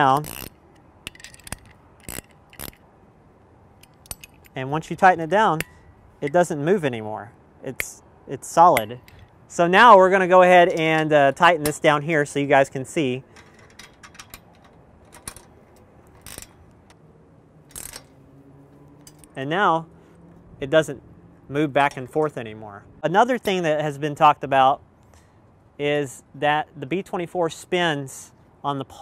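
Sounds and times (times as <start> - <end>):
metallic clicks of allen key: 0.0 - 2.8, 3.8 - 4.6, 13.3 - 16.7
wrench scraping metal: 0.0 - 2.9, 3.8 - 6.6, 10.6 - 12.4, 13.2 - 17.0, 17.7 - 18.2.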